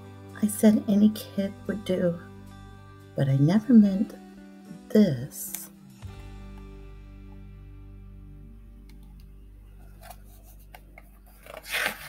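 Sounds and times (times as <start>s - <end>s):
page turning rustle: 9.8s - 12.0s.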